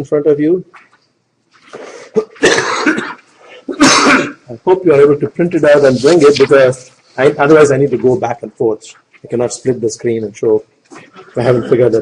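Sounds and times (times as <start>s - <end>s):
person coughing: 2.1s - 4.4s, 11.1s - 12.0s.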